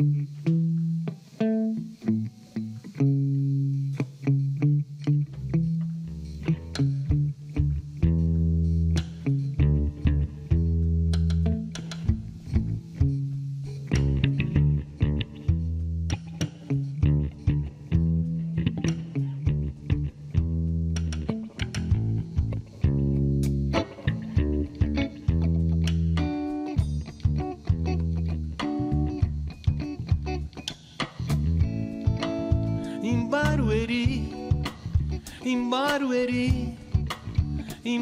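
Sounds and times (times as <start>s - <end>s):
electric guitar notes: 0.0s - 38.0s
sustained low bass notes: 4.5s - 30.6s, 31.3s - 35.4s, 36.3s - 37.8s.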